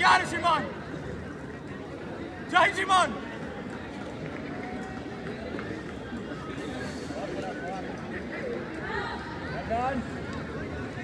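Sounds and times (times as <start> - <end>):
faint distant voices: 0.0 - 11.0
outdoor background noise: 0.0 - 11.0.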